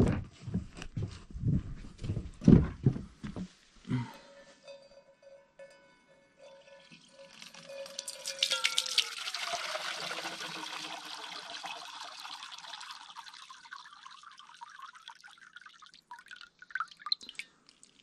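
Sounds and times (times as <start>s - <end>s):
water trickling and dripping: 6.5s - 18.0s
water splashing into metal pan: 6.9s - 18.0s.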